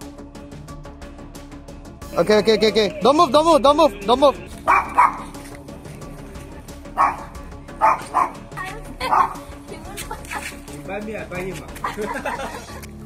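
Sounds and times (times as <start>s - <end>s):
dog barking: 4.6s - 5.4s, 7.0s - 8.4s, 9.0s - 9.5s.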